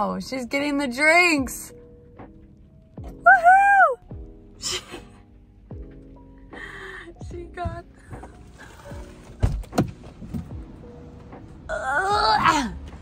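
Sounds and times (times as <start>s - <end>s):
background music: 0.0s - 13.0s
car door opening: 7.6s - 11.5s
car door clunks: 8.9s - 11.4s.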